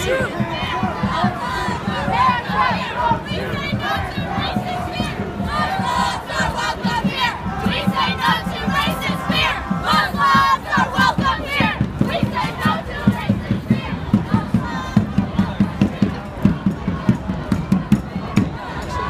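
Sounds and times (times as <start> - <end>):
crowd shouting and chanting: 0.0 - 19.0.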